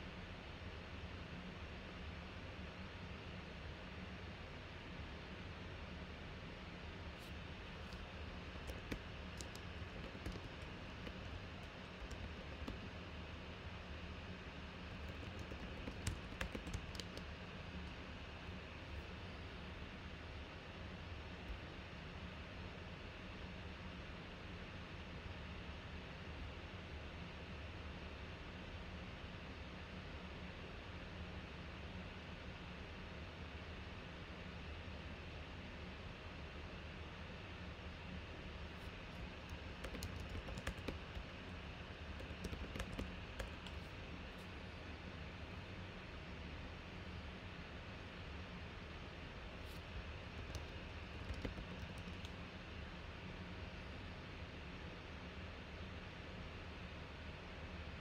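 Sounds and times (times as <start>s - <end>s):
low hum and hiss: 0.0s - 58.0s.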